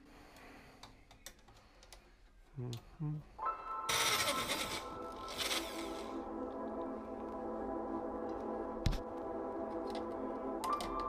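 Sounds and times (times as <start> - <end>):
ambient music with held tones: 0.0 - 11.0
electric drill boring into metal: 3.9 - 6.1.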